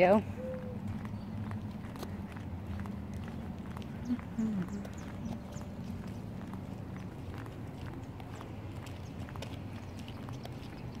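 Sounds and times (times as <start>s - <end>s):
footsteps on paved path: 0.0s - 11.0s
steady low rumble: 0.0s - 11.0s.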